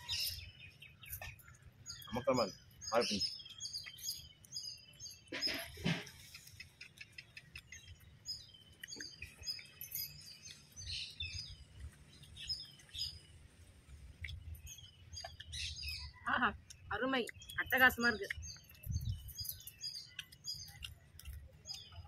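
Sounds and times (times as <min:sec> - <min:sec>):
people eating: 0:00.0 - 0:22.0
small birds chirping: 0:00.0 - 0:22.0.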